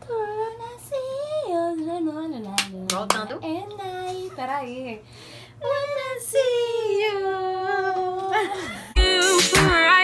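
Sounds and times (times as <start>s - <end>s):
hand clap: 2.6s - 3.2s.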